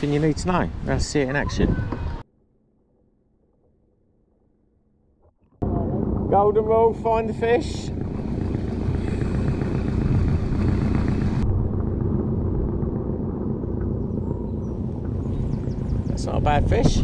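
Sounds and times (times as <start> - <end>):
wind buffeting microphone: 0.0 - 2.2, 5.6 - 17.0.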